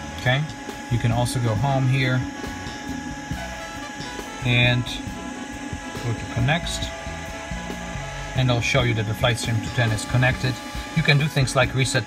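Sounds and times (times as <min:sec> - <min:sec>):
faint whining tones: 0:00.0 - 0:12.0
machine hum: 0:00.0 - 0:12.0.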